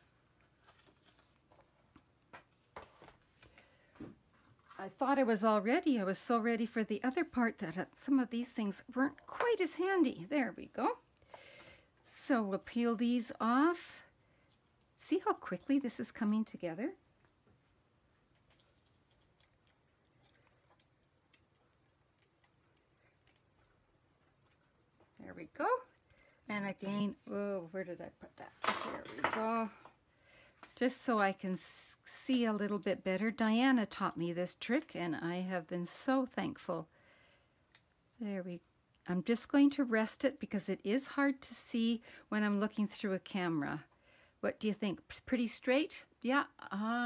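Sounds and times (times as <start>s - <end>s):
cardstock being folded: 0.4s - 3.6s.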